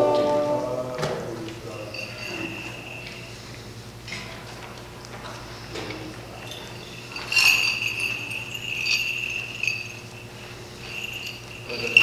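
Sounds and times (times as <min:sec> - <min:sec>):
censer bells jingling: 0:01.6 - 0:04.0, 0:05.9 - 0:12.0.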